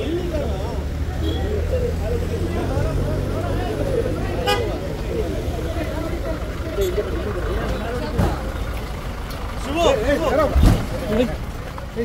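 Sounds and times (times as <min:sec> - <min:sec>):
crowd talking and shouting: 0:00.0 - 0:12.0
van engine humming: 0:00.0 - 0:12.0.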